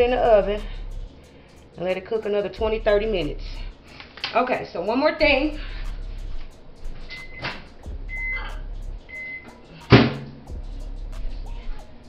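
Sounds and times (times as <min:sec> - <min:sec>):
faint background music: 0:00.0 - 0:12.0
high electronic beeps: 0:07.1 - 0:07.5, 0:08.1 - 0:09.5.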